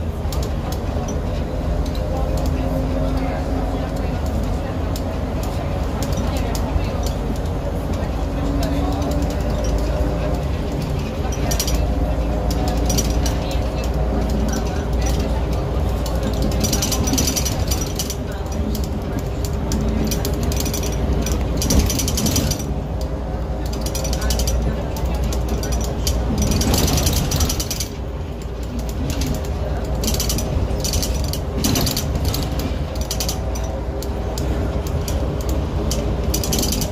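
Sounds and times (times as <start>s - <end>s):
bus engine drone: 0.0s - 36.9s
rattling and clicking of bus body: 0.0s - 36.9s.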